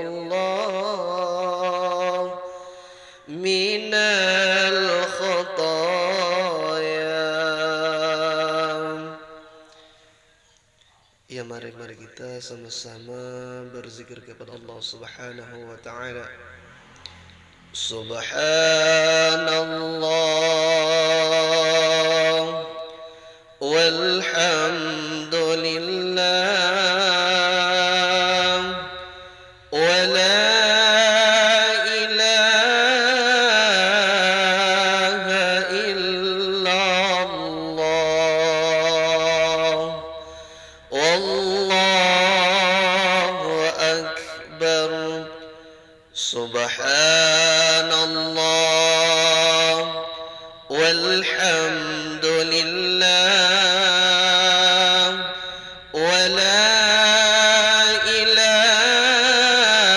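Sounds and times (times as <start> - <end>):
man chanting into microphone: 0.0 - 9.8, 11.3 - 59.9.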